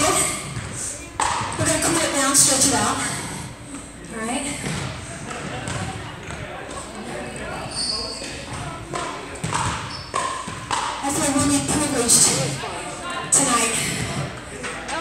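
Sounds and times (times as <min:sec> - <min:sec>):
indistinct voices in echoing hall: 0:00.0 - 0:15.0.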